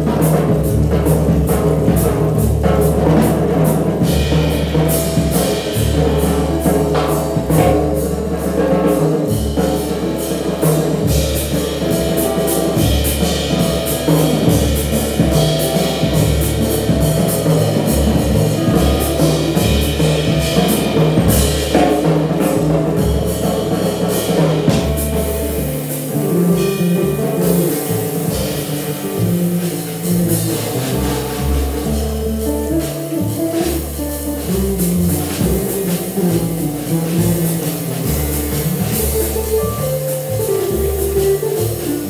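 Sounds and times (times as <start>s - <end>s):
drum kit with ride cymbal: 0.0s - 42.0s
jazz guitar: 0.0s - 42.0s
upright double bass: 0.0s - 42.0s.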